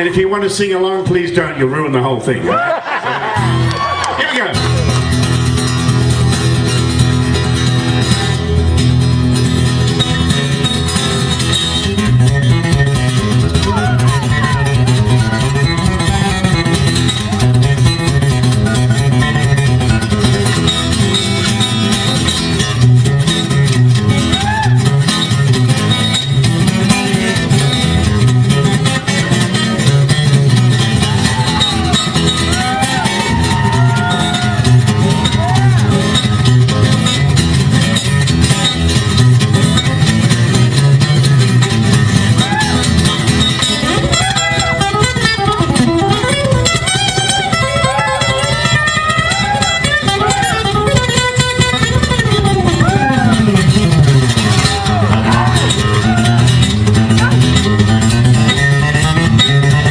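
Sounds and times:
fingerstyle acoustic guitar blues: 0:03.2 - 0:03.8, 0:04.5 - 0:59.9.

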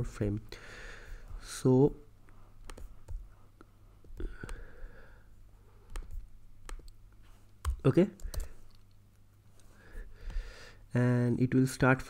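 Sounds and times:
mouse and keyboard clicks: 0:02.6 - 0:03.2, 0:05.8 - 0:07.0, 0:07.6 - 0:09.0.

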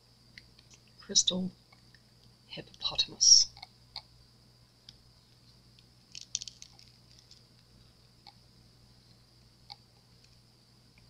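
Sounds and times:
silicone mold crackling and clicking: 0:04.9 - 0:08.4.

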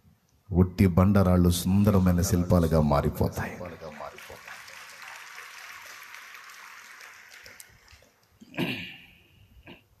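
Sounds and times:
audience clapping: 0:02.6 - 0:08.6.

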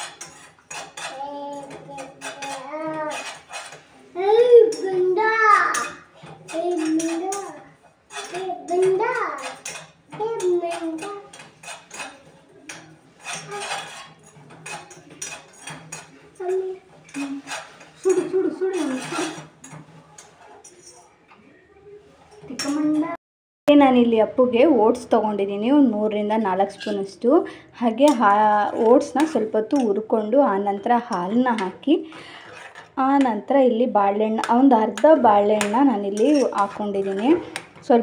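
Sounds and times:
metal utensils clinking on pot: 0:00.0 - 0:21.4, 0:22.3 - 0:23.2, 0:26.2 - 0:27.3, 0:27.9 - 0:38.0.

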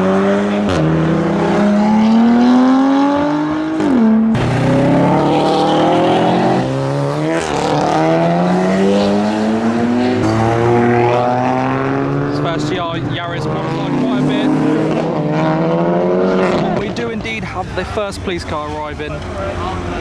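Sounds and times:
car engines accelerating hard: 0:00.0 - 0:20.0.

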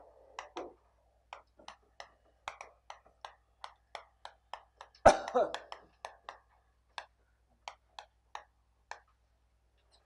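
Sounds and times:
chalk tapping on chalkboard: 0:00.4 - 0:09.2
cough-like vocal sound: 0:05.0 - 0:05.7.

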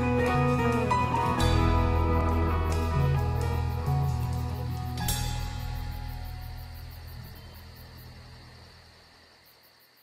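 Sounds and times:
crickets chirping: 0:00.6 - 0:10.0.

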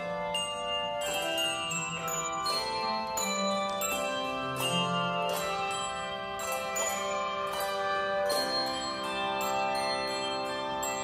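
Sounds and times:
handbell choir ringing chords: 0:00.0 - 0:11.0.

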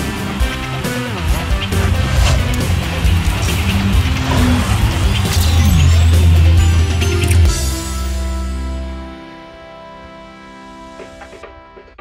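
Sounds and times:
sweeping whoosh effects: 0:01.1 - 0:07.2
heavy sustained bass: 0:01.1 - 0:09.2.

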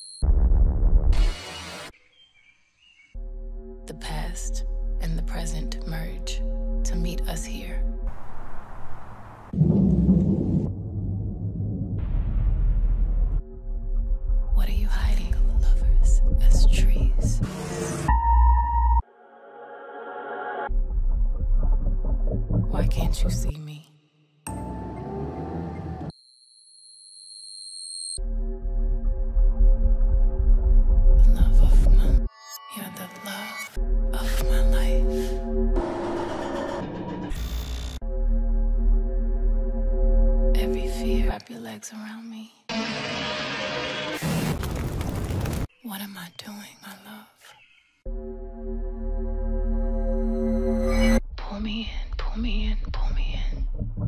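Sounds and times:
music: 0:03.1 - 0:08.6, 0:09.6 - 0:26.1, 0:28.2 - 0:41.4, 0:48.1 - 0:54.0
low pulsing rumble: 0:09.6 - 0:17.4.

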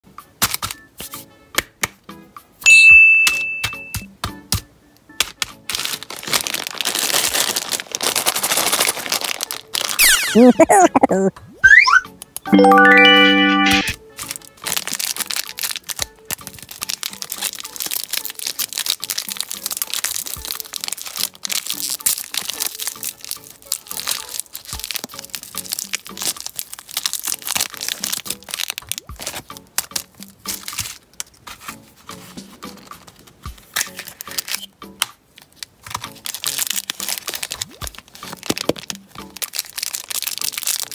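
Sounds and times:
soft background music: 0:00.1 - 0:40.9
bright ding: 0:02.7 - 0:04.0
plastic wrapper crinkling: 0:05.6 - 0:10.2, 0:14.2 - 0:34.7, 0:35.3 - 0:40.9.

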